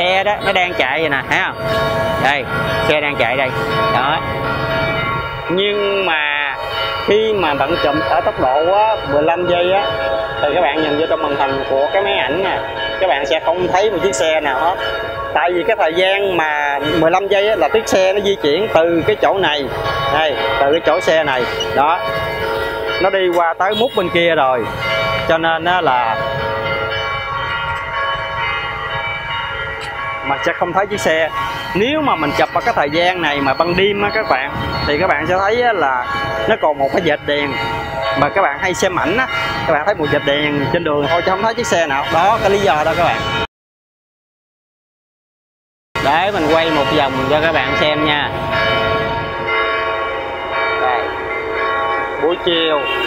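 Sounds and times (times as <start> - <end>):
motorbike traffic rumble: 0.0 - 9.8, 13.1 - 26.6, 29.8 - 39.3, 52.2 - 53.0
church bells pealing: 0.0 - 43.5, 46.0 - 53.0.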